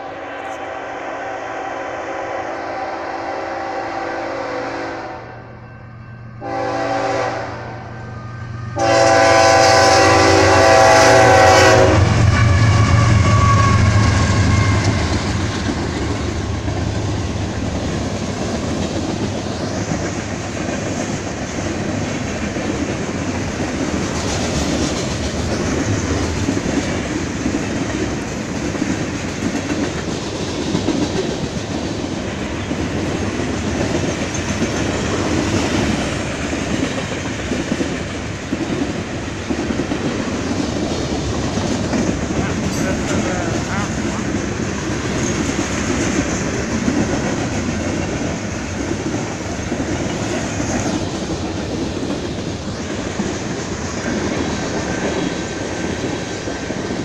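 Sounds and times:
train horn blasts: 0.0s - 5.6s, 6.4s - 15.5s
freight cars rumbling past: 7.4s - 55.7s.

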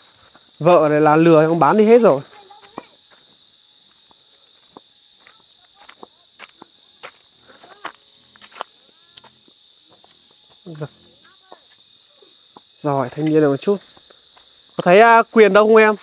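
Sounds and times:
footsteps on dirt path: 0.0s - 16.0s
high-pitched insect drone: 0.0s - 16.0s.

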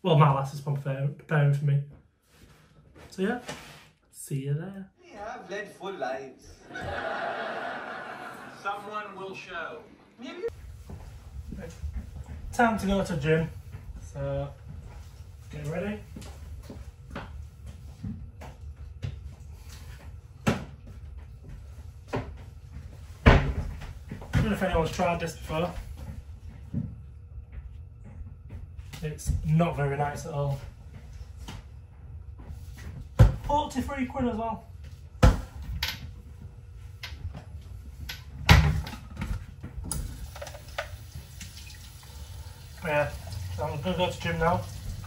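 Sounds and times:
cupboard doors opening and closing: 38.4s - 40.2s.

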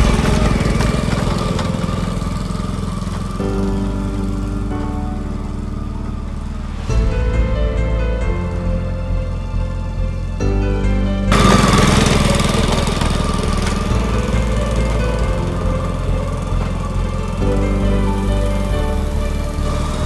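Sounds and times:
small engine running: 0.0s - 6.9s, 11.3s - 20.0s
background music: 0.0s - 20.0s.

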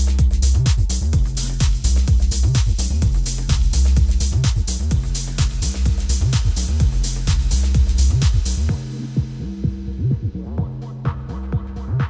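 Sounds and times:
kick drum and hi-hats: 0.0s - 12.0s
sliding synth bassline: 0.0s - 12.0s
steady low tones: 0.0s - 12.0s.

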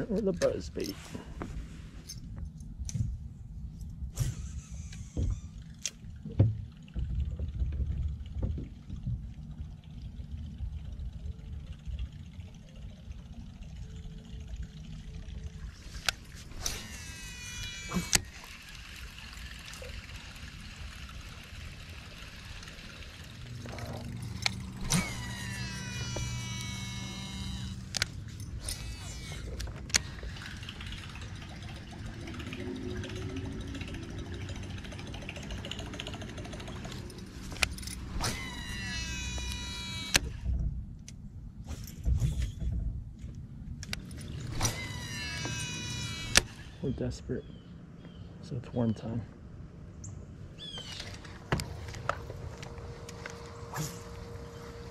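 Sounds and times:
low hum: 0.0s - 54.9s
reel spool whine: 3.5s - 8.2s, 9.6s - 40.8s, 43.8s - 47.7s, 50.5s - 54.9s.

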